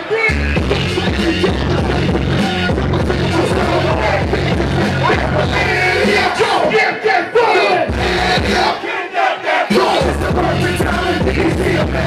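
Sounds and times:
hip-hop bass beat: 0:00.0 - 0:08.9, 0:09.6 - 0:12.0
rappers shouting into microphones: 0:00.0 - 0:12.0
crowd shouting along: 0:03.3 - 0:10.4.

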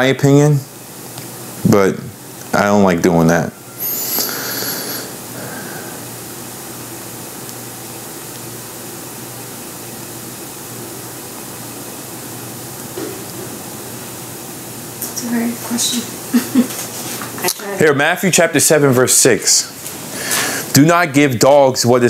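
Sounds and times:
room hiss: 0:00.0 - 0:22.0
high wavering sound: 0:03.4 - 0:05.3.

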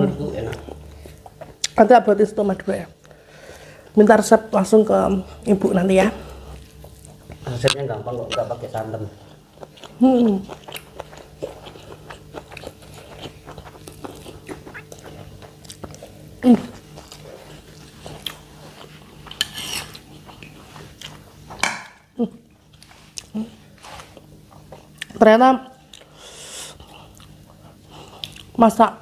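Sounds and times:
chewing: 0:00.5 - 0:01.8, 0:06.0 - 0:21.6, 0:22.6 - 0:28.6.

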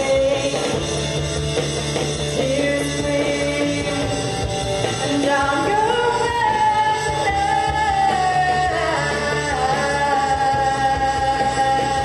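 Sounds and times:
electric guitars: 0:00.0 - 0:12.0.

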